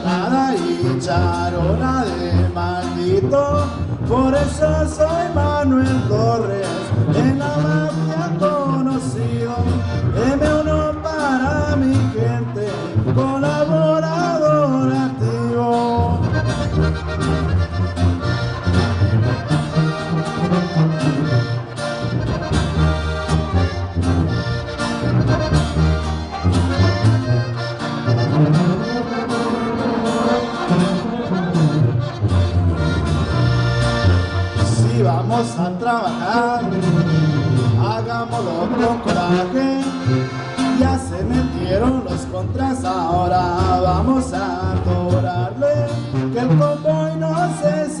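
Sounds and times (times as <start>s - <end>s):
button accordion melody: 0.0s - 48.0s
strummed guitar: 0.0s - 48.0s
tuba bass line: 0.0s - 48.0s.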